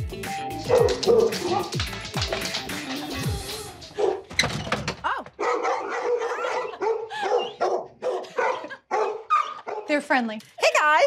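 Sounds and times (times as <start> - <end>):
dogs barking: 0.6 - 2.6, 3.9 - 4.3, 5.4 - 9.9.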